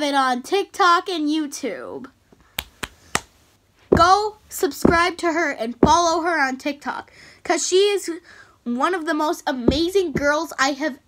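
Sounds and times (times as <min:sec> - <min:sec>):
fingers snapping: 0:02.6 - 0:03.3.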